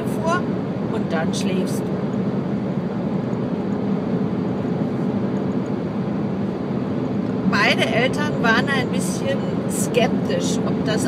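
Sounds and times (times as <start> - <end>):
road and engine drone in car: 0.0 - 11.0.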